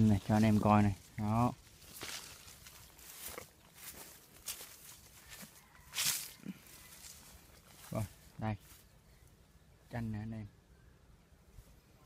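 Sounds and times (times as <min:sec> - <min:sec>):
faint footsteps: 0:00.0 - 0:09.1
leaves and branches rustling: 0:00.0 - 0:09.4.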